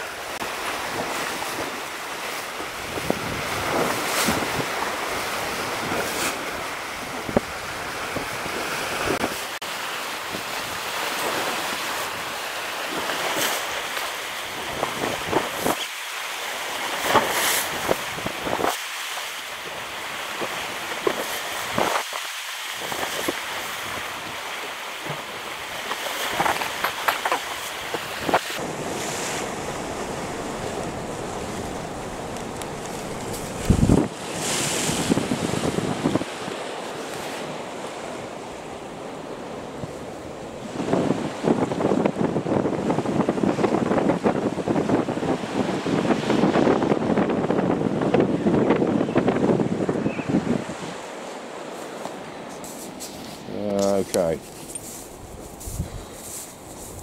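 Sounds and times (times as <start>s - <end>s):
wind buffeting microphone: 0.0s - 9.4s, 14.4s - 15.9s, 22.8s - 36.8s, 37.4s - 51.1s, 54.0s - 57.0s
surf breaking on rocks: 0.0s - 38.4s.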